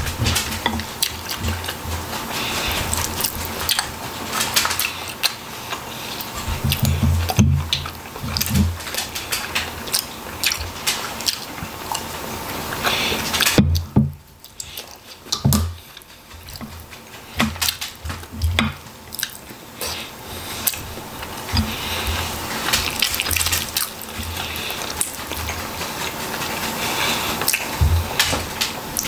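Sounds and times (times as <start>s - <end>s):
wet chewing and mouth noises: 0.0s - 29.0s.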